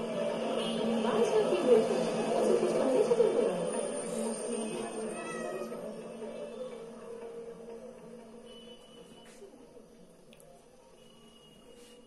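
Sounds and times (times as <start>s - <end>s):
dense mid-range murmur: 0.0s - 11.1s.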